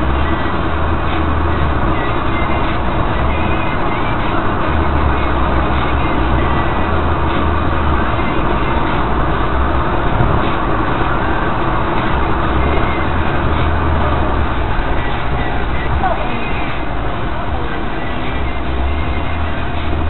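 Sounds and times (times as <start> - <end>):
car engine drone: 0.0 - 20.0.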